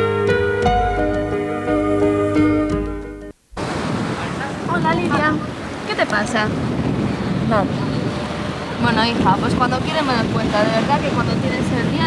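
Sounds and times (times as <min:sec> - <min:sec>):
surf washing: 0:03.5 - 0:12.0
wind buffeting microphone: 0:03.5 - 0:12.0.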